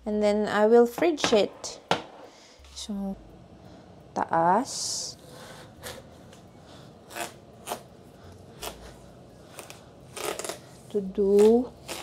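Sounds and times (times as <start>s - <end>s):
knife cutting watermelon rind: 9.5s - 12.0s.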